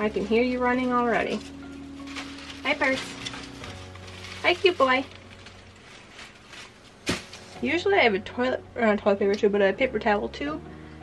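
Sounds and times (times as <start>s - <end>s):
rustling of artificial flowers: 0.0s - 8.1s.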